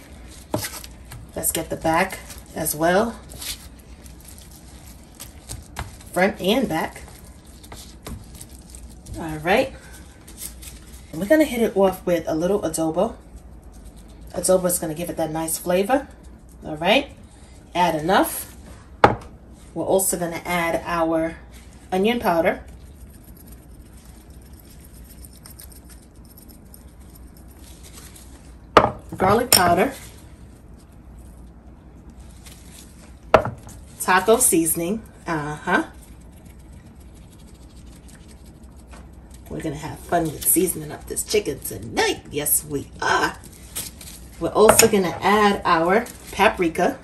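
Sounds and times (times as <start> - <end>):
spice shaken from a jar: 0.0 - 9.1, 12.8 - 14.7, 22.6 - 28.7, 35.9 - 39.5
wet squishing and rubbing: 30.0 - 41.8.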